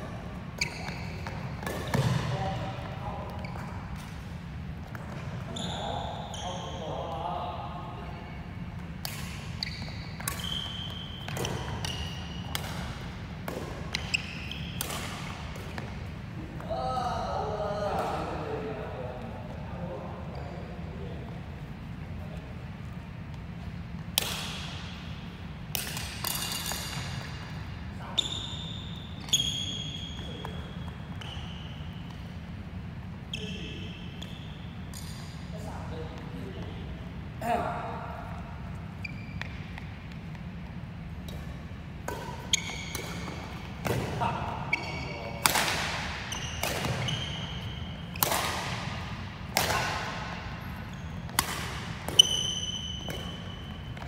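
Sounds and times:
rackets hitting shuttlecock: 0:00.5 - 0:02.8, 0:08.8 - 0:16.1, 0:24.0 - 0:27.7, 0:41.1 - 0:54.0
shoes squeaking on wooden floor: 0:00.6 - 0:01.6.

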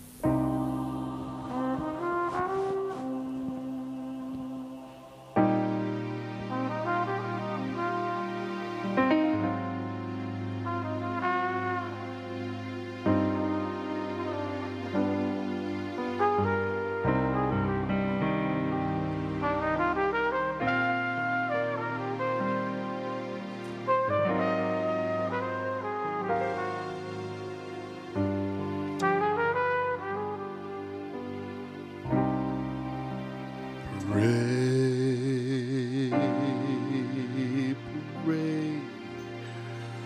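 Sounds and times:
piano and bass accompaniment: 0:00.0 - 0:40.0
trumpet playing slow melody: 0:00.0 - 0:40.0.

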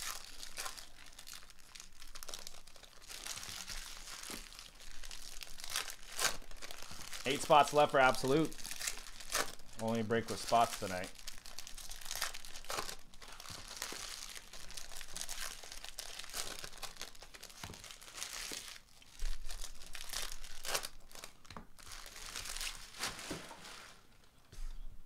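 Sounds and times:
foil wrappers tearing and crinkling: 0:00.0 - 0:24.0.

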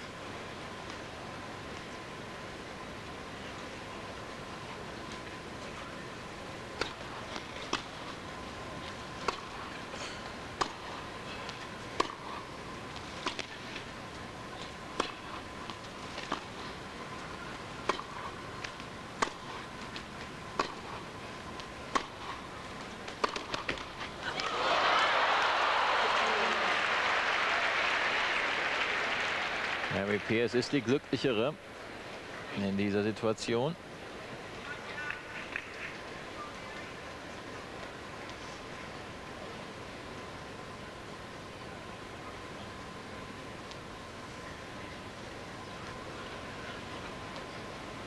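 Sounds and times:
tennis ball hit by rackets: 0:06.8 - 0:07.0, 0:07.6 - 0:08.0, 0:09.2 - 0:09.6, 0:10.5 - 0:12.2, 0:13.2 - 0:13.6, 0:14.9 - 0:16.6, 0:17.8 - 0:19.5, 0:20.5 - 0:20.8, 0:21.9 - 0:22.3, 0:23.1 - 0:24.5
tennis ball bouncing on court: 0:06.8 - 0:08.0, 0:09.2 - 0:09.6, 0:10.5 - 0:12.2, 0:14.7 - 0:16.6, 0:17.8 - 0:20.8, 0:21.6 - 0:22.3, 0:23.1 - 0:24.5
crowd applause: 0:24.2 - 0:30.9.

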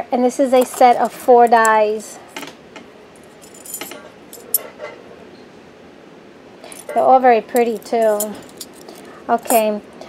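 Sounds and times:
metal dies clinking: 0:03.3 - 0:05.0, 0:07.6 - 0:08.9.

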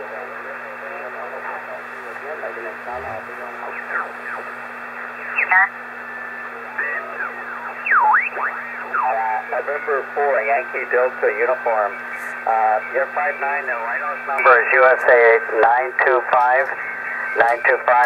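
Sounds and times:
faint voice on radio: 0:00.0 - 0:04.6, 0:06.4 - 0:18.0
radio band hiss: 0:00.0 - 0:18.0
steady low hum: 0:00.0 - 0:18.0.

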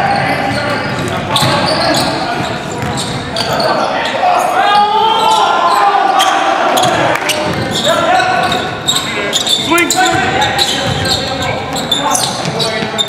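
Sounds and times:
players calling out: 0:00.0 - 0:13.0
basketball bouncing on wooden floor: 0:00.9 - 0:03.1, 0:10.0 - 0:13.0.

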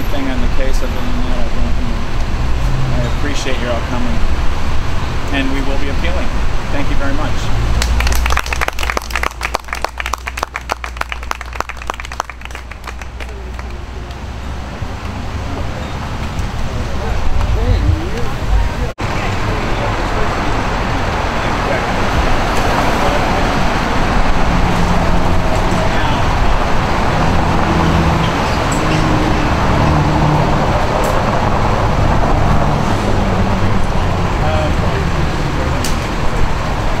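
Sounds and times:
road traffic: 0:00.0 - 0:37.0.

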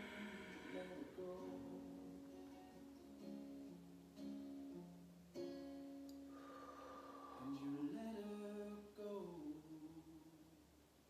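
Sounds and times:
acoustic guitar music: 0:00.0 - 0:10.2.

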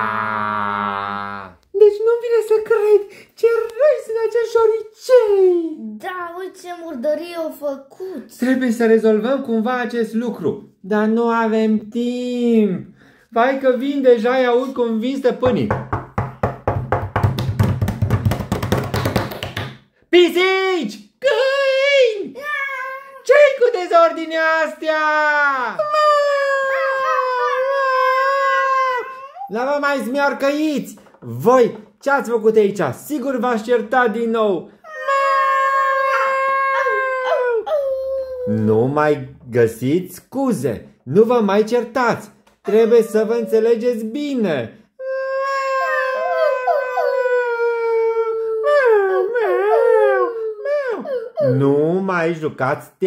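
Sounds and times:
person mimicking whimpering cry: 0:22.4 - 0:23.3, 0:25.6 - 0:29.5, 0:34.8 - 0:38.8, 0:42.7 - 0:43.8, 0:45.0 - 0:51.8
second wavering voice: 0:42.7 - 0:43.7.

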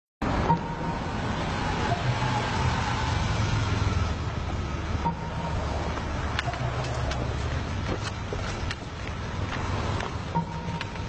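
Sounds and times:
city street traffic rumble: 0:00.2 - 0:11.0.

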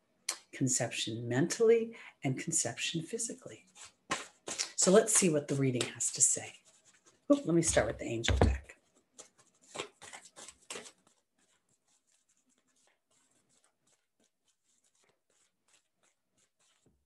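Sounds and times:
cards rustling and clicking: 0:03.8 - 0:06.1, 0:08.8 - 0:16.9.

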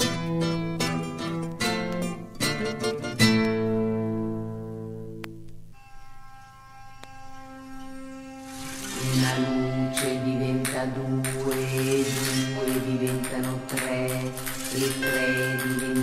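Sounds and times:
plucked string instruments: 0:00.0 - 0:16.0.

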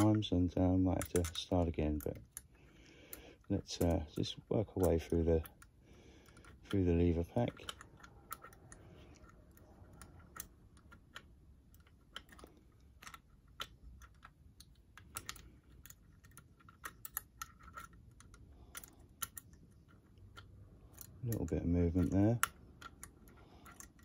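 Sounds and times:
faint metallic lock picking clicks: 0:00.0 - 0:24.0.

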